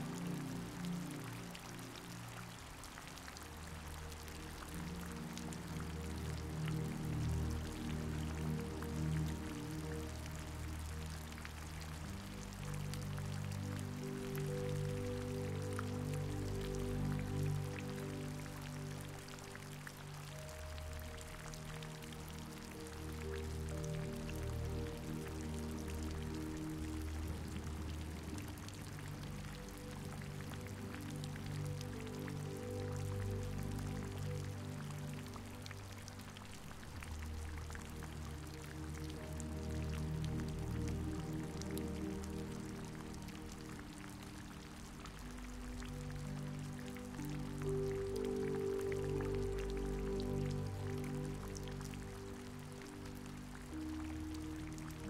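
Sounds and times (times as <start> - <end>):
slow background music: 0.0 - 55.0
steady rain falling: 0.0 - 55.0.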